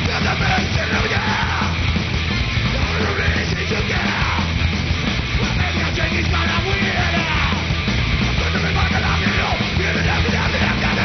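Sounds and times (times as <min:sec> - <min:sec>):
punk band playing live: 0:00.0 - 0:11.0
vocalist yelling: 0:02.8 - 0:04.5.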